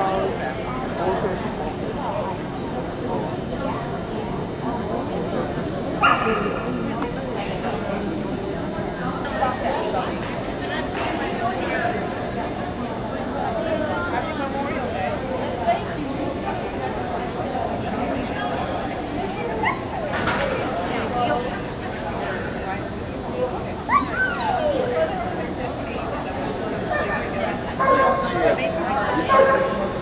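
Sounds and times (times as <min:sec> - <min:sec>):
background chatter: 0:00.0 - 0:30.0
murmur of people talking: 0:00.0 - 0:30.0
dog barking: 0:06.0 - 0:06.5
dog whining: 0:18.9 - 0:20.2, 0:23.4 - 0:25.4.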